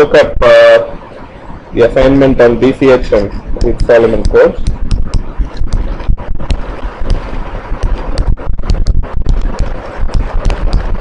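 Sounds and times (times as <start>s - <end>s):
rustling rumble: 3.0s - 11.0s
irregular clicks and knocks: 3.2s - 11.0s.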